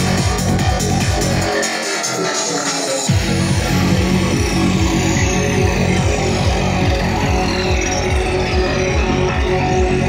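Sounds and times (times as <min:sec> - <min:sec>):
loud electronic dance music: 0:00.0 - 0:10.0.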